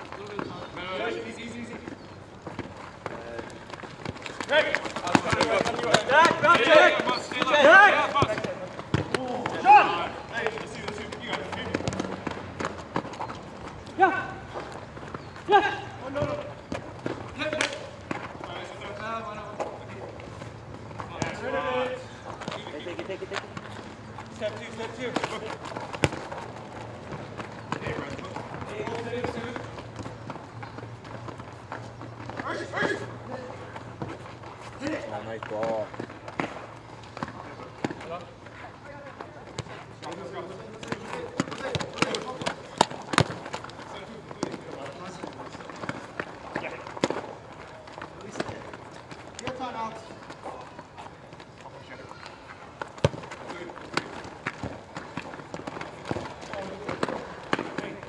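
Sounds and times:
players calling and shouting: 0.0 - 58.0
running footsteps: 0.0 - 58.0
ball being kicked: 1.8 - 13.4, 14.5 - 19.8, 21.0 - 34.2, 39.2 - 50.8, 52.7 - 58.0.

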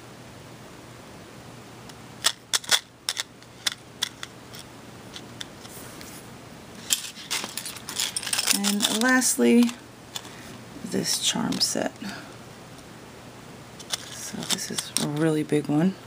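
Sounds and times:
metal charms clicking and tapping: 6.8 - 10.3, 13.8 - 15.3.

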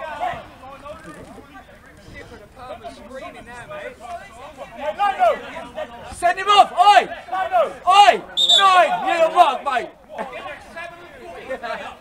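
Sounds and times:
men shouting in argument: 4.8 - 12.0
high whistle-like tone: 8.4 - 8.8.

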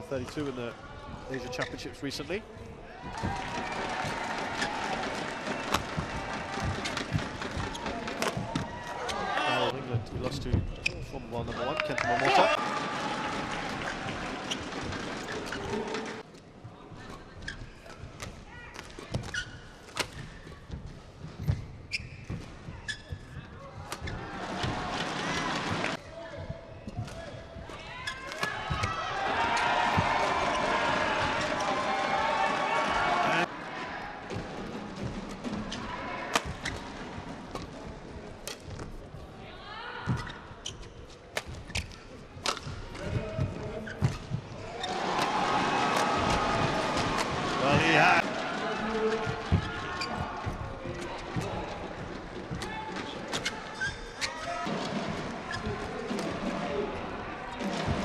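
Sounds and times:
crowd cheering and shouting: 3.0 - 9.7, 11.7 - 16.2, 27.8 - 34.4, 44.6 - 51.8
shoes squeaking on court: 3.6 - 11.4, 13.8 - 31.6, 35.0 - 39.3, 40.0 - 45.3, 48.8 - 56.3
racket hitting shuttlecock: 4.0 - 9.0, 23.9 - 25.8, 27.0 - 30.6, 36.3 - 36.9, 41.3 - 47.6.

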